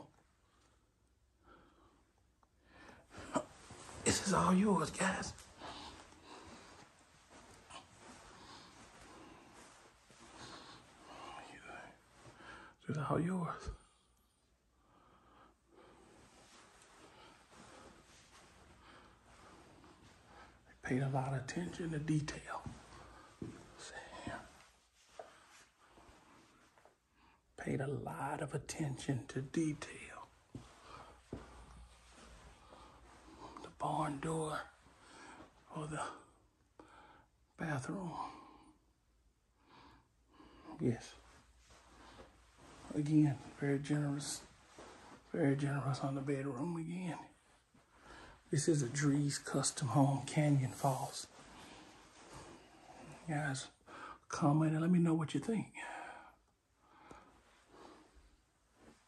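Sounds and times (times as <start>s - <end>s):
soft whispering voice: 3.2s - 14.2s, 18.8s - 26.4s, 27.5s - 36.4s, 37.6s - 38.8s, 39.8s - 47.6s, 48.4s - 56.5s.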